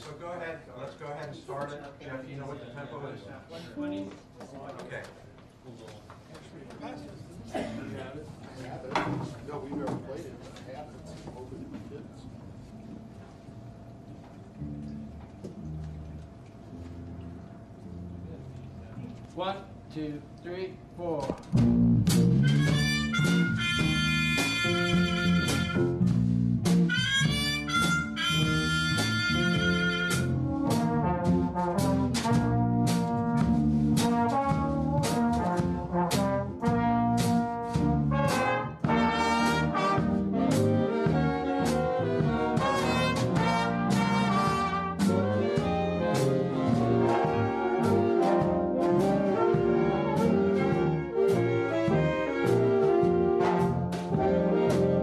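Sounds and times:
swing big band playing: 0:21.5 - 0:55.0
brass chords with upward slide: 0:21.6 - 0:55.0.

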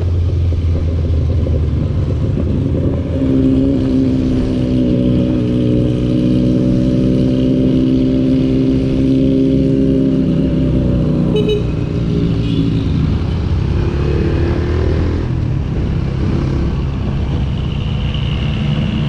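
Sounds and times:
wind rumble on microphone: 0:00.0 - 0:10.8
motorcycle engine cruising: 0:00.0 - 0:19.0.

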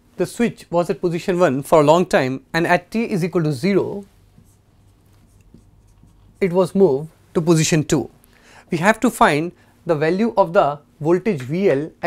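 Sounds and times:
marker pen on whiteboard: 0:03.1 - 0:07.7.

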